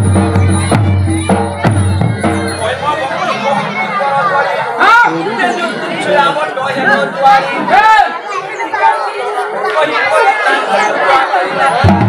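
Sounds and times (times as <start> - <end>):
crowd chatter: 0.0 - 12.0
voices talking: 0.0 - 12.0.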